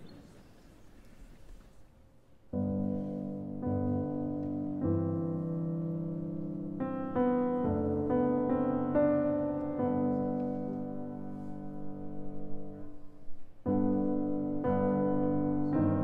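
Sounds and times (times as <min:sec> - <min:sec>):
piano jazz ballad: 0:02.5 - 0:16.0.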